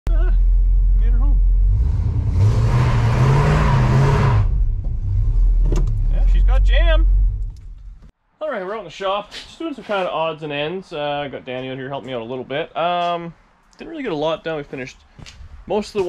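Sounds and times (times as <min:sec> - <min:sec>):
car engine revving and idling: 0:00.4 - 0:08.0.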